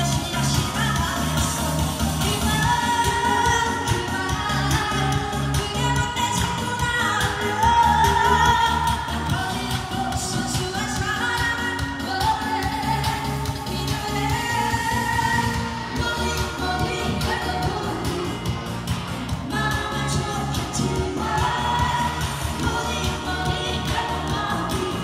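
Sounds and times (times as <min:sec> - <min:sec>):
pop backing track with beat: 0:00.0 - 0:25.0
woman singing into microphone: 0:00.0 - 0:25.0.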